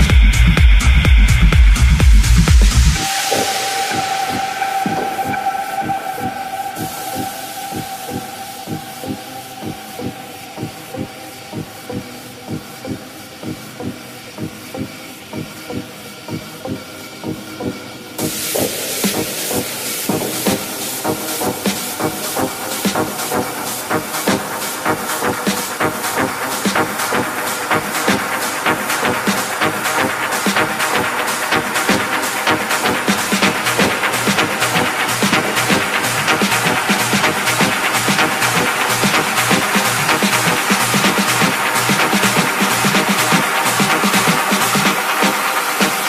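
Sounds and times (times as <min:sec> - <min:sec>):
hissing hi-hats: 0:00.0 - 0:46.0
house music mix: 0:00.0 - 0:46.0
held synth note: 0:03.0 - 0:12.6
rising hiss: 0:03.0 - 0:12.6.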